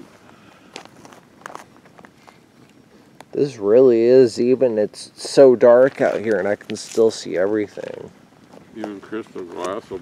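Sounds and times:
footsteps on gravelly dirt: 0:00.0 - 0:02.4.

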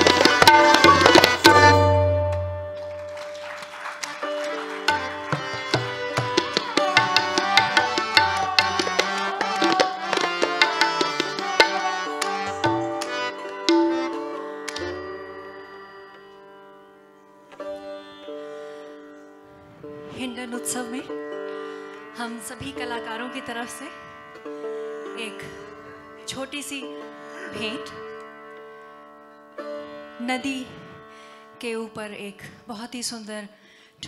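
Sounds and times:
tabla strokes: 0:00.0 - 0:03.2, 0:04.2 - 0:15.2
plucked sitar: 0:00.0 - 0:33.3.

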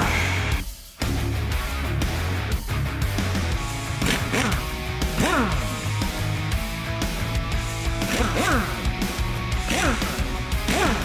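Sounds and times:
rock music with electric guitar: 0:00.0 - 0:11.0.

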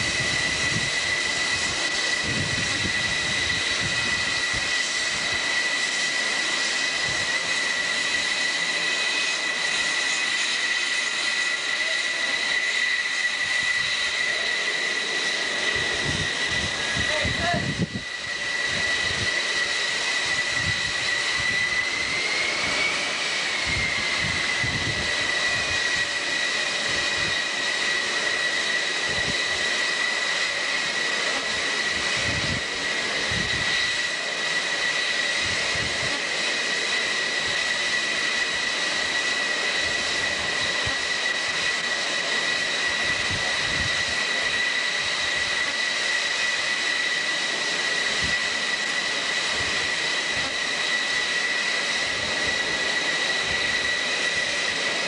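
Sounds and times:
jet engines whining: 0:00.0 - 0:55.0
jet exhaust rush: 0:00.0 - 0:55.0.

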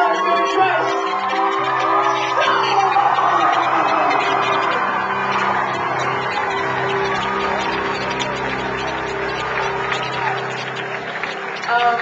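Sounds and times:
audience cheering and whooping: 0:00.0 - 0:12.0
low held chord: 0:01.2 - 0:11.7.

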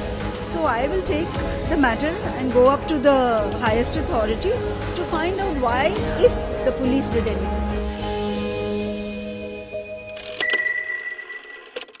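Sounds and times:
music: 0:00.0 - 0:12.0
high ringing tone: 0:08.9 - 0:12.0.

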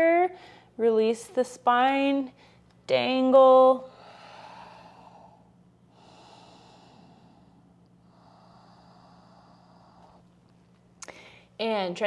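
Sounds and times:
slow breathing through nose: 0:03.9 - 0:10.3.

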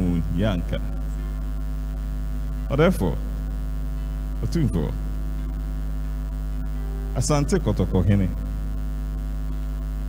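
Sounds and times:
person speaking into a microphone: 0:00.0 - 0:01.2, 0:04.4 - 0:05.0, 0:07.2 - 0:08.5
electrical mains hum: 0:00.0 - 0:10.0.

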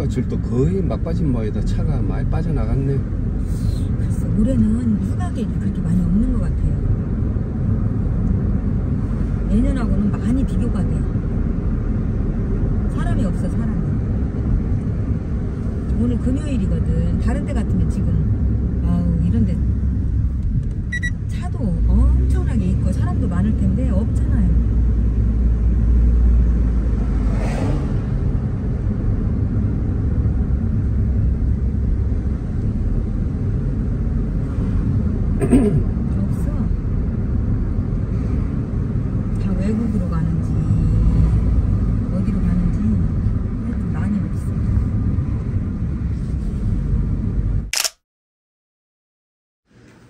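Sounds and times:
car cabin road rumble: 0:00.0 - 0:47.7.

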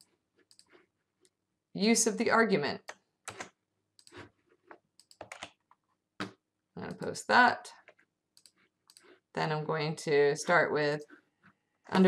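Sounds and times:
keyboard and mouse clicks: 0:00.0 - 0:00.8, 0:02.8 - 0:07.1, 0:07.8 - 0:09.1.

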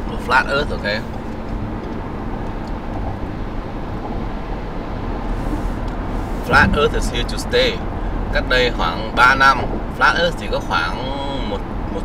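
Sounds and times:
car road noise rumble: 0:00.0 - 0:12.0.

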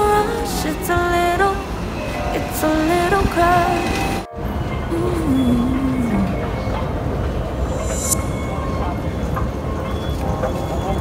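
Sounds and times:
city ambience: 0:00.0 - 0:11.0
rail vehicles rumbling: 0:00.0 - 0:11.0
tone gliding down: 0:02.0 - 0:09.4.

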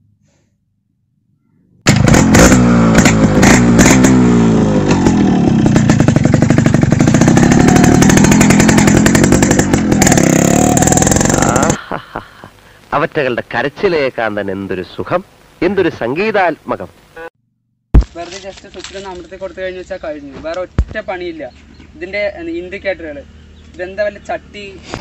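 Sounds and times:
motorcycle engine revving hard: 0:01.8 - 0:11.8.

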